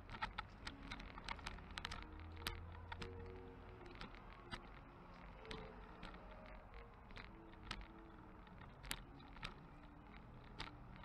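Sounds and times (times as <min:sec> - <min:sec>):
faint music: 0:00.0 - 0:11.0
light clicking and rattling: 0:00.0 - 0:11.0.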